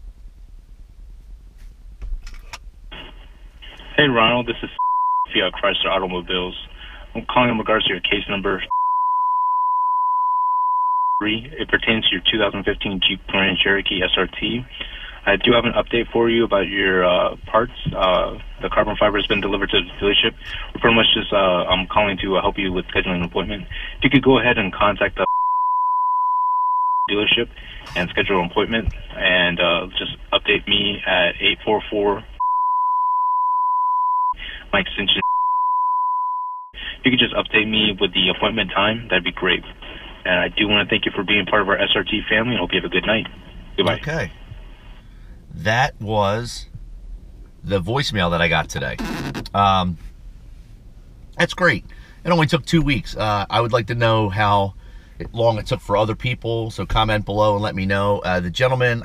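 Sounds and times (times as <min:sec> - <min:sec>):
voice over phone line: 0:03.7 - 0:08.8, 0:11.0 - 0:25.5, 0:27.1 - 0:32.2, 0:34.3 - 0:35.4, 0:36.7 - 0:43.2, 0:43.8 - 0:44.3, 0:45.6 - 0:46.6
censor bleep tone: 0:04.8 - 0:05.4, 0:08.7 - 0:11.4, 0:25.2 - 0:27.1, 0:32.4 - 0:34.4, 0:35.2 - 0:36.8.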